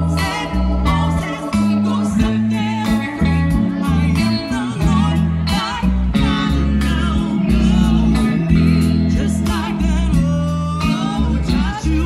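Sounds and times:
bass guitar: 0.0 - 12.0
drums: 0.0 - 12.0
electric guitar: 0.0 - 12.0
singers with vibrato: 0.0 - 12.0.

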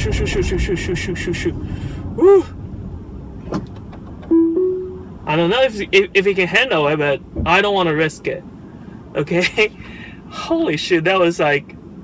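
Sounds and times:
car cabin road rumble: 0.0 - 12.0
short musical notes: 4.3 - 5.2.

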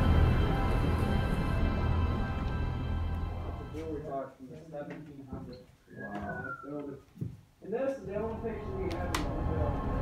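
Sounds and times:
low voices talking: 3.5 - 7.1
short falling whistle: 5.9 - 6.8.

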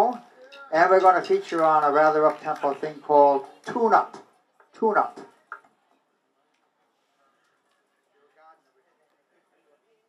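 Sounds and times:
man speaking over pa system: 0.0 - 5.3
faint crowd chatter: 0.0 - 10.0.

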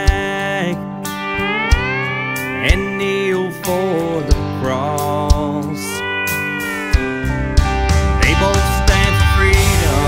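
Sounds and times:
country band playing: 0.0 - 10.0.

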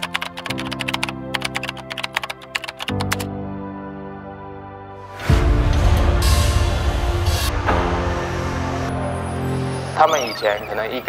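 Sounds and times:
keyboard typing clicks: 0.0 - 3.3
background music with sustained chords: 0.0 - 11.0.

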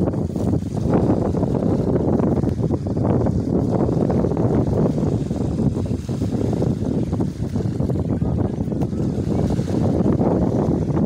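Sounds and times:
small waves washing ashore: 0.0 - 11.0
wind rumble on microphone: 0.0 - 11.0.

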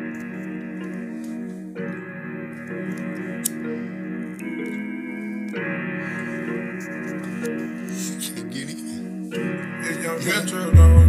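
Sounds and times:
sustained rap beat chords: 0.0 - 11.0.

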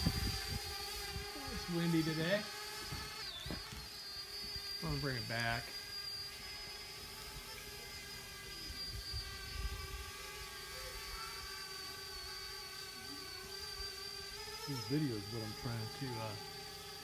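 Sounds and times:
wind rumbling on microphone: 0.0 - 1.7
drone propellers whirring: 0.0 - 17.0.

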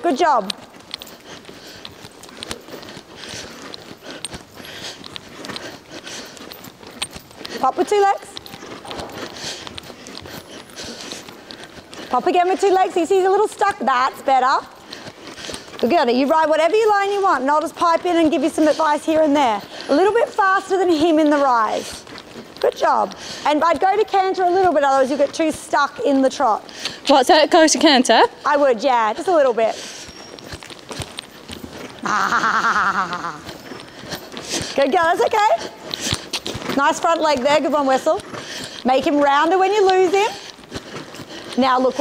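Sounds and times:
horse hoofbeats on sand: 0.0 - 42.0.

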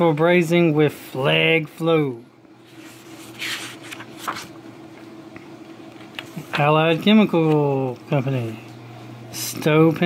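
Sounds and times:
faint steady hum: 0.0 - 10.0
paper pages turning: 2.6 - 4.6.

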